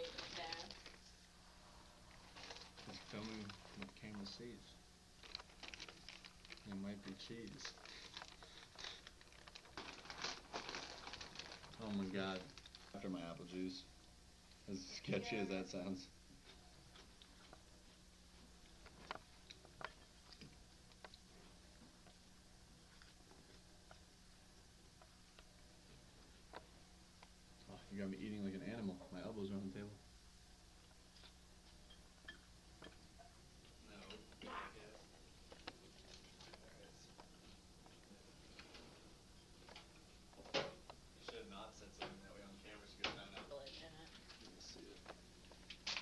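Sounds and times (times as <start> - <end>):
low steady hum: 0.0 - 46.0.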